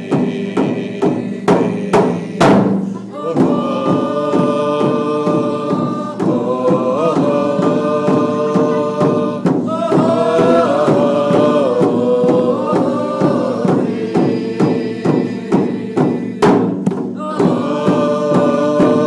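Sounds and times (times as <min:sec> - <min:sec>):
drum beaten with padded stick: 0:00.0 - 0:19.0
group of voices chanting: 0:00.0 - 0:19.0.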